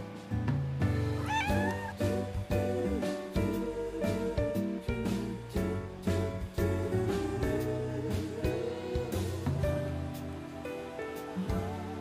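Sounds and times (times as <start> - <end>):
cat meowing: 1.1 - 2.2.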